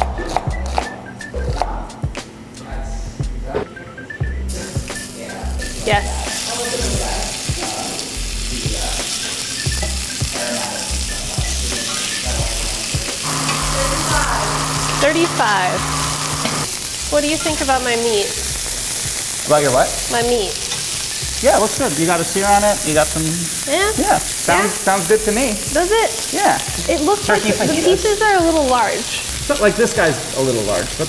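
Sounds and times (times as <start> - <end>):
meat sizzling in a skillet: 4.5 - 31.0.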